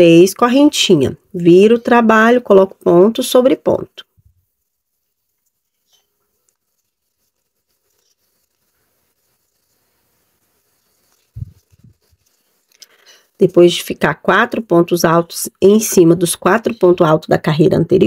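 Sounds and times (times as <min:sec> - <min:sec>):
yarn rustling with crochet hook: 0:00.0 - 0:17.2.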